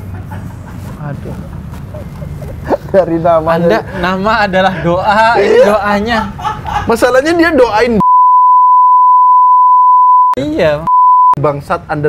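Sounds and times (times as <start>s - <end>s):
censor bleep: 8.0s - 11.4s.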